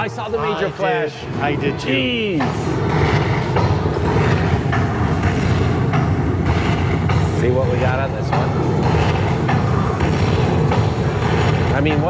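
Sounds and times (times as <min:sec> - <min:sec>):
steady low din: 0:00.0 - 0:12.0
low thumps: 0:01.2 - 0:12.0.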